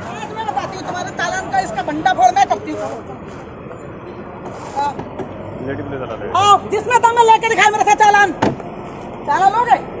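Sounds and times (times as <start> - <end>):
city bus: 0.0 - 10.0
road traffic noise: 0.0 - 10.0.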